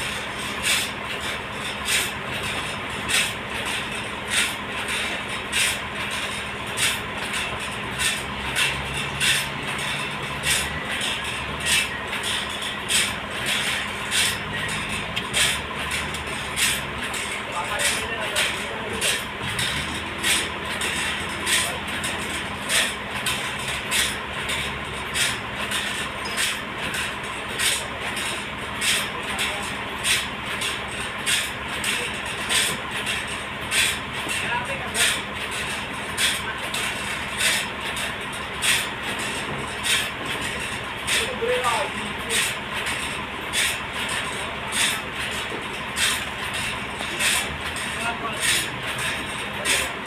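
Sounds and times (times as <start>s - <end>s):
forklift engine running: 0.0s - 50.0s
steady rhythmic beat: 0.0s - 50.0s.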